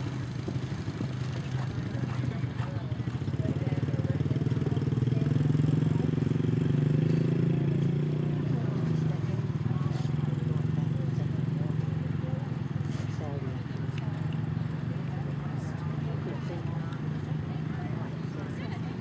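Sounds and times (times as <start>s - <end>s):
small engine droning: 0.0s - 19.0s.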